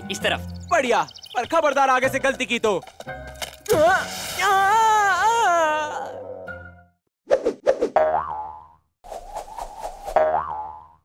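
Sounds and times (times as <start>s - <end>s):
springy boing sound effects: 8.0s - 8.8s, 10.2s - 11.0s.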